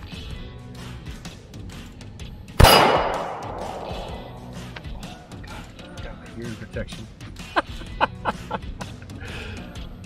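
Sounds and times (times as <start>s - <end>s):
pistol shot with echo: 2.6s - 4.6s.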